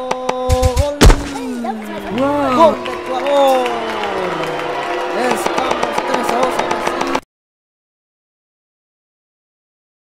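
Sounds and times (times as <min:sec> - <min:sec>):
man shouting: 0:01.7 - 0:06.7
sharp taps or claps: 0:02.1 - 0:07.2.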